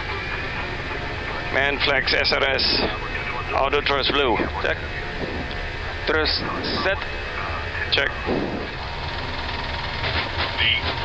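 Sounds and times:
low rumble: 0:00.0 - 0:09.9
jet engines at takeoff thrust: 0:00.0 - 0:11.0.

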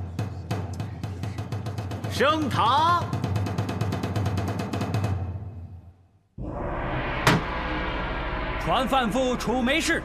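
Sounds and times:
rapid drum roll: 0:00.0 - 0:05.4
low sustained drone: 0:06.4 - 0:10.0.

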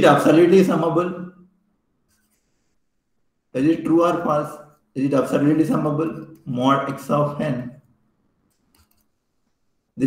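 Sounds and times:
faint scratch: 0:02.1 - 0:02.9.

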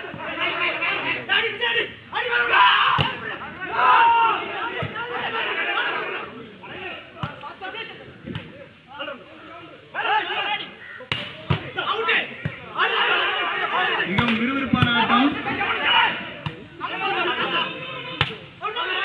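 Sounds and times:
spectators shouting and talking: 0:00.0 - 0:19.0.

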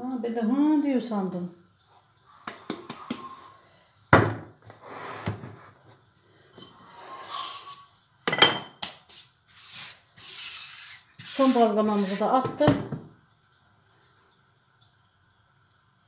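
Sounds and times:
wooden rolling pin rolling dough: 0:09.1 - 0:13.0.

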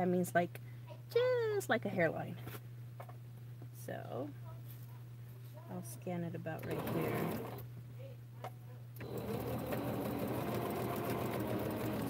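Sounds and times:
sewing machine running: 0:06.6 - 0:07.6, 0:09.0 - 0:12.0.

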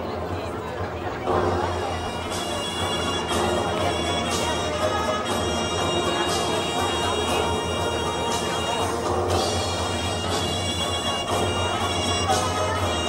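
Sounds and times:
music over loudspeaker: 0:01.3 - 0:13.0.

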